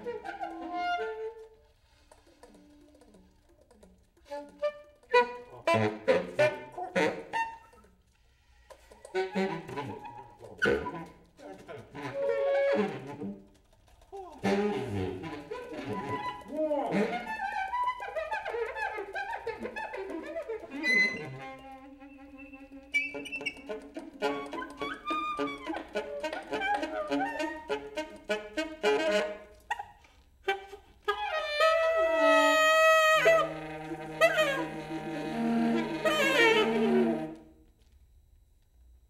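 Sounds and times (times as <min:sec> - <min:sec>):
saxophones improvising: 0:04.1 - 0:37.8.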